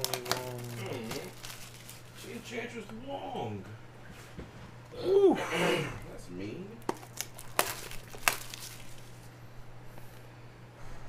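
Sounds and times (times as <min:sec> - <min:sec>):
light crinkling: 0:00.0 - 0:02.5, 0:06.8 - 0:09.3.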